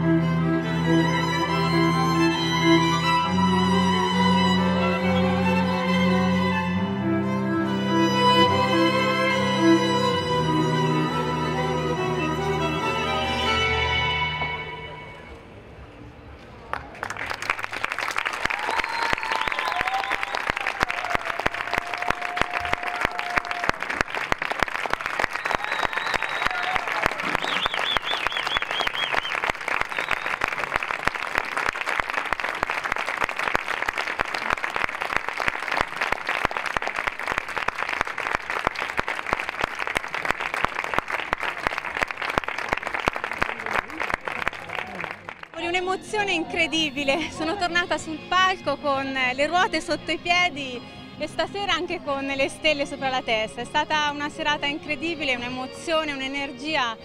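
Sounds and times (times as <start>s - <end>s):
audience applauding: 16.6s - 45.6s
crowd shouts: 25.5s - 27.4s.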